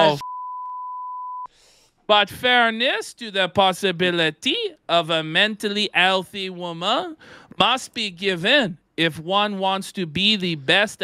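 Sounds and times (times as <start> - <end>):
man's voice: 0.0 - 0.2, 2.1 - 11.0
censor bleep: 0.0 - 1.5.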